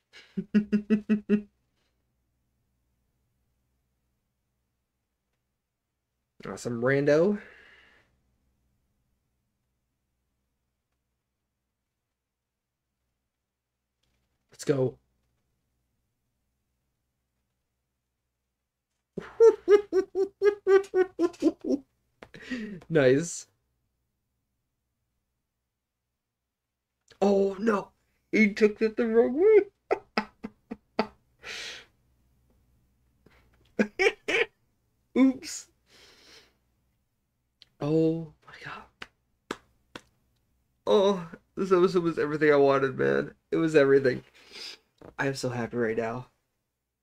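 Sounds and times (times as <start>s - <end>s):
man laughing: 0.2s - 1.5s, 19.2s - 21.8s, 22.4s - 22.9s, 29.4s - 31.2s, 33.8s - 34.5s.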